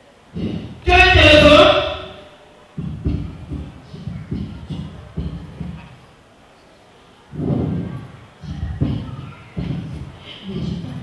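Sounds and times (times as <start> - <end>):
microphone handling thuds: 0.4 - 1.8, 2.8 - 6.0, 7.4 - 11.0.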